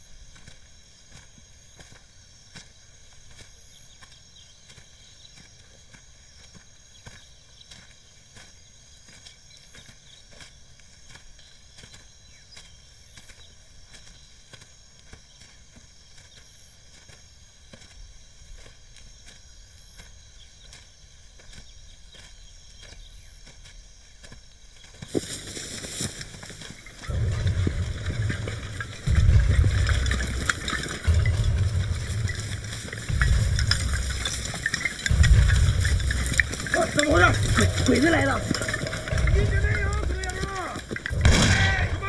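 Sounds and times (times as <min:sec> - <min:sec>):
footsteps through tall grass: 0:00.0 - 0:42.0
deep throb: 0:27.0 - 0:42.0.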